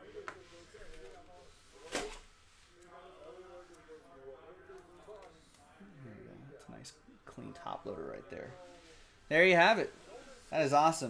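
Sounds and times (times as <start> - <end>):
faint muttered speech: 0.0 - 11.0.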